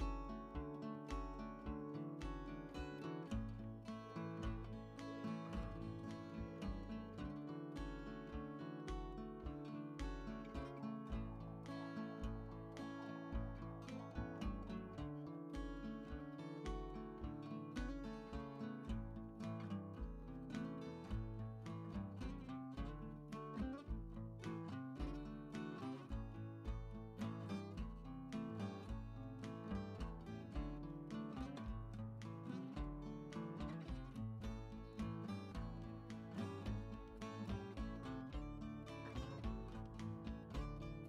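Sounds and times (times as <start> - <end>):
plucked acoustic guitar: 0.0 - 41.0.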